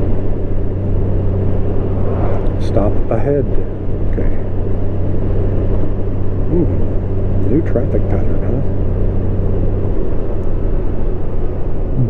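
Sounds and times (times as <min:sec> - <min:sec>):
motorcycle engine droning: 0:00.0 - 0:12.0
wind and road noise: 0:00.0 - 0:12.0.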